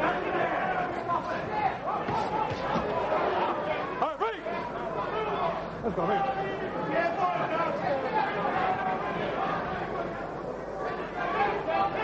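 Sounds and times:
arena crowd chatter: 0:00.0 - 0:12.0.

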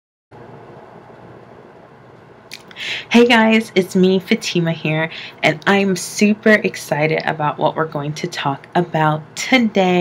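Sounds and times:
room hiss: 0:00.4 - 0:10.0.

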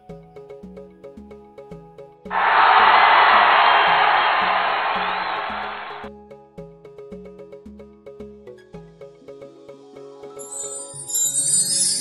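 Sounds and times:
crowd cheering: 0:02.3 - 0:06.1.

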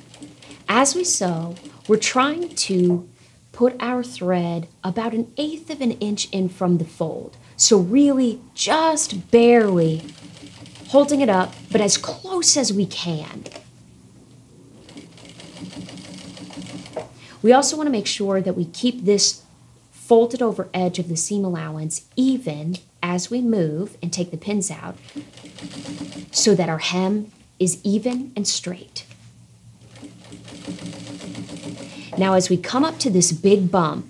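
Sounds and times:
sewing machine stitching: 0:00.0 - 0:03.0, 0:09.4 - 0:12.3, 0:14.8 - 0:17.1, 0:24.8 - 0:26.5, 0:29.8 - 0:33.1.

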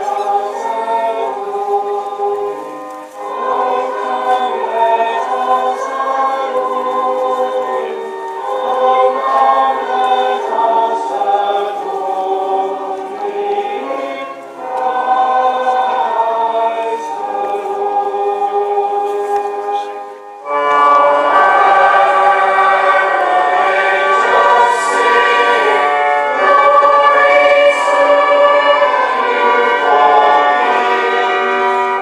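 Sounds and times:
choir singing long held notes: 0:00.0 - 0:32.0.

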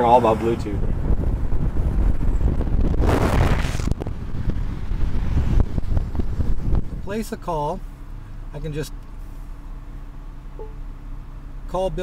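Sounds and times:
highway traffic rumble: 0:00.0 - 0:12.0
wind buffeting microphone: 0:00.6 - 0:07.2.

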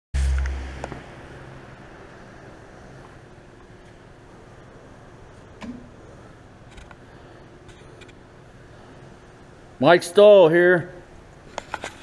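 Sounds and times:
faint steady hum: 0:00.2 - 0:12.0.

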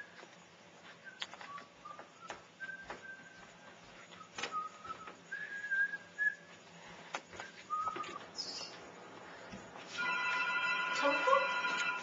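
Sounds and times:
person whistling: 0:01.0 - 0:03.6, 0:04.2 - 0:06.5, 0:07.4 - 0:08.2.

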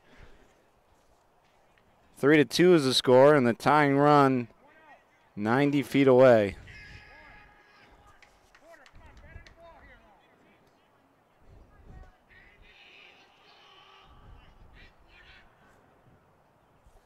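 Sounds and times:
distant indistinct voices: 0:04.1 - 0:16.8
short calls: 0:12.2 - 0:15.9.

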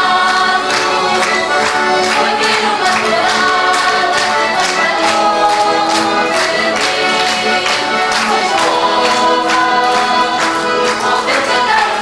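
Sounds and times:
accordion: 0:00.0 - 0:12.0
chorus of voices singing: 0:00.0 - 0:12.0
strummed guitars: 0:00.0 - 0:12.0.

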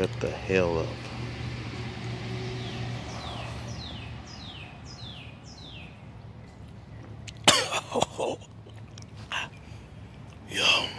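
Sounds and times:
man coughing: 0:07.4 - 0:08.4.

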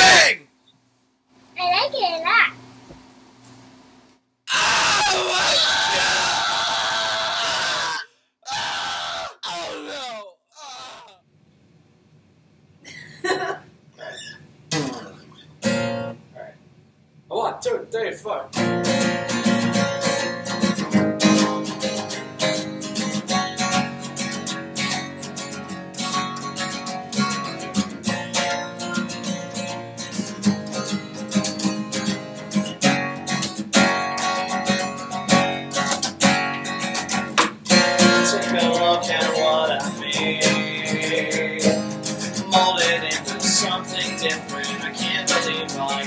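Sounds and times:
acoustic bass guitar: 0:14.0 - 0:16.2, 0:18.5 - 0:46.0
acoustic guitar strumming: 0:14.7 - 0:16.2, 0:18.5 - 0:46.0.

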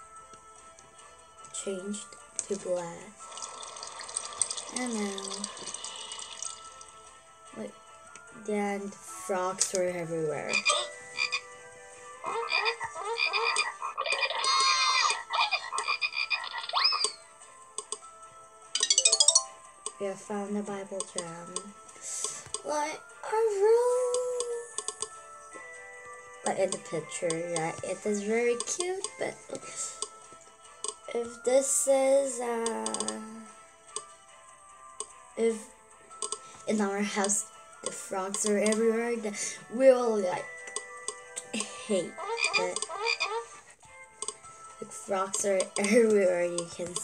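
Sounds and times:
sustained tone music: 0:00.0 - 0:31.2
cartoon frog croaks: 0:10.5 - 0:11.5, 0:12.2 - 0:17.2, 0:42.1 - 0:43.6
sharp clicks: 0:17.8 - 0:18.1, 0:24.1 - 0:25.2, 0:36.2 - 0:36.4, 0:42.4 - 0:43.0, 0:44.2 - 0:44.4.

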